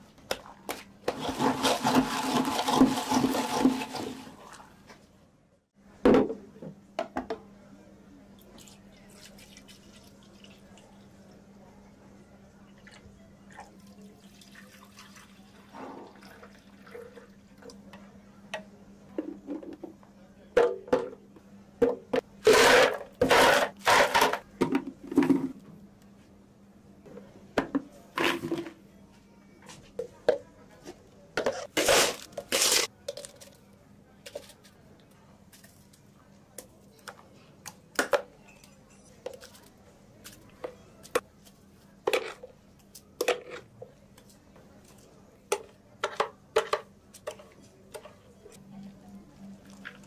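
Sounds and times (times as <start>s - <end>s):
soft pouring and handling: 47.1s - 50.0s.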